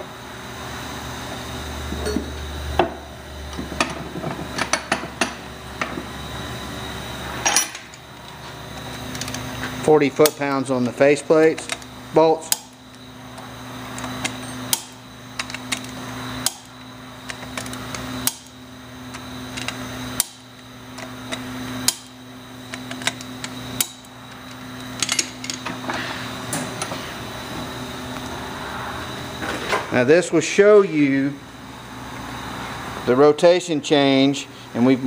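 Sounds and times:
steady hum: 0.0s - 35.0s
torque wrench clicking: 11.5s - 25.6s.

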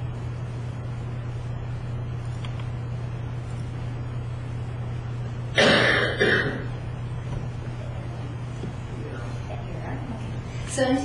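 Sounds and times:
low steady hum: 0.0s - 11.0s
person clearing throat: 5.5s - 6.8s.

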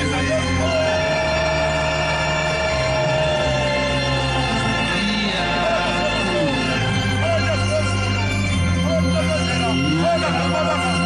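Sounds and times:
electronic organ chord: 0.0s - 11.0s.

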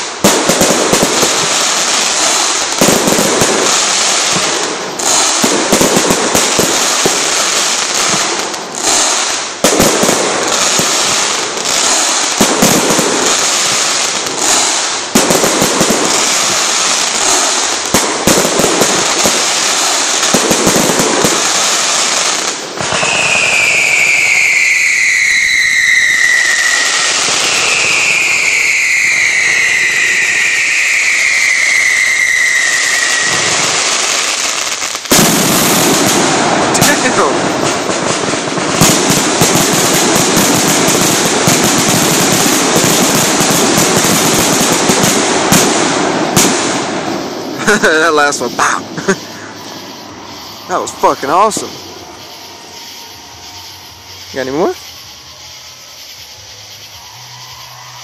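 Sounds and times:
falling firework whistles: 0.0s - 58.0s
fireworks bangs and crackling: 0.0s - 58.0s.

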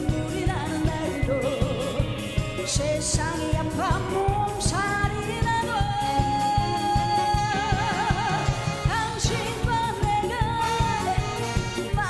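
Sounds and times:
steady drum beat: 0.0s - 12.0s
woman singing with band: 0.0s - 12.0s.

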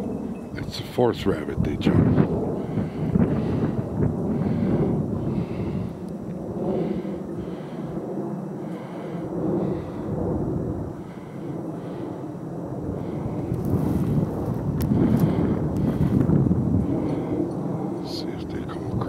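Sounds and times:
wind rumbling on microphone: 0.0s - 19.0s.

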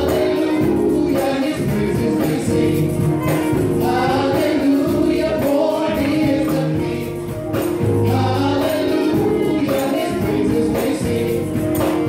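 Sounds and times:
gospel choir singing in harmony: 0.0s - 12.0s.

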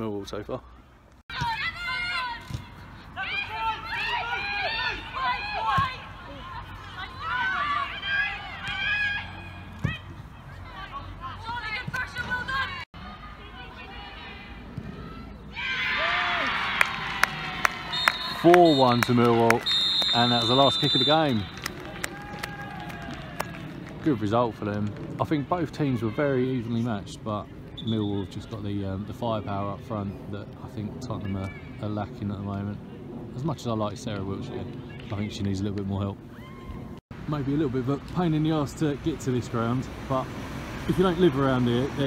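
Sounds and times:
women shouting and calling: 1.3s - 2.5s, 3.1s - 17.2s.

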